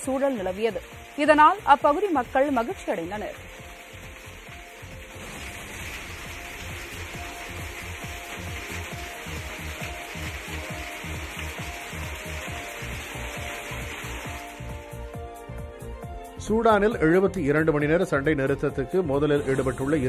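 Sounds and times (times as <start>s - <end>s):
heavy rain on concrete: 0.0s - 15.3s.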